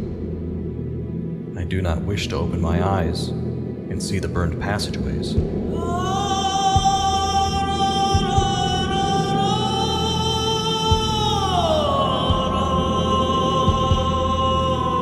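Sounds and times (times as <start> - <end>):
low sustained drone: 0.0 - 15.0.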